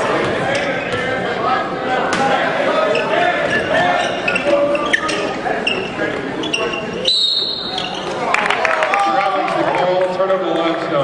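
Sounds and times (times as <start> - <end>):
murmur of voices: 0.0 - 11.0
referee's whistle blast: 7.0 - 7.8.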